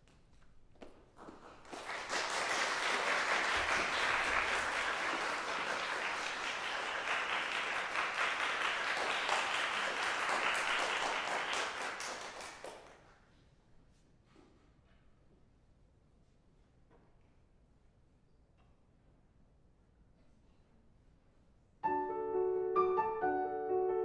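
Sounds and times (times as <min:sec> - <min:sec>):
audience applauding: 0:01.4 - 0:13.1.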